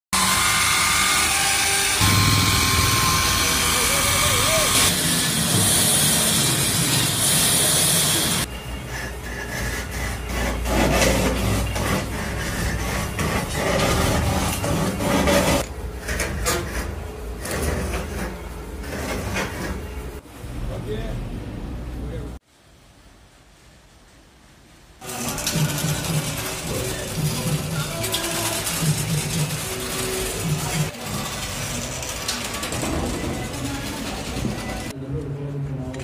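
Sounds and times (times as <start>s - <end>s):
electric chainsaw cutting log: 0.2s - 8.5s, 25.0s - 32.7s
wood lathe scraping: 0.2s - 20.0s, 25.0s - 34.9s.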